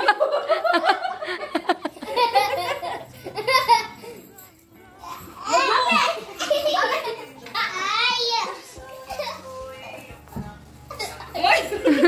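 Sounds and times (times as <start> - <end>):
children giggling: 0.0 - 4.5, 5.1 - 7.8, 8.9 - 9.8, 10.9 - 12.0
children laughing and shrieking: 0.0 - 10.1, 10.9 - 12.0.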